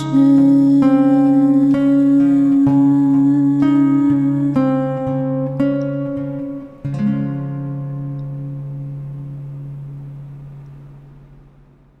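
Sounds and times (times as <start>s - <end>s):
acoustic guitar chord ringing: 0.0s - 11.8s.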